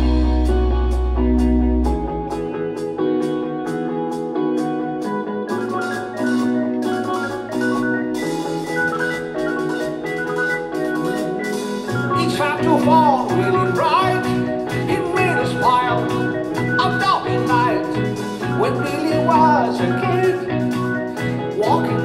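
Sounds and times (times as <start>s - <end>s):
keyboard notes: 0.0s - 22.0s
live rock band: 0.0s - 22.0s.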